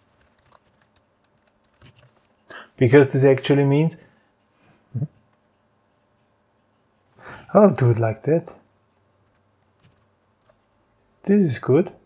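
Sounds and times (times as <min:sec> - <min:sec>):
faint keyboard typing: 0:00.0 - 0:02.5, 0:08.9 - 0:10.8.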